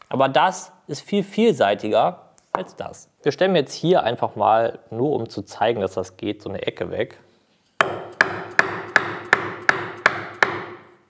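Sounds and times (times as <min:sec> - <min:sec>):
chisel strikes on wood: 0:07.8 - 0:10.9.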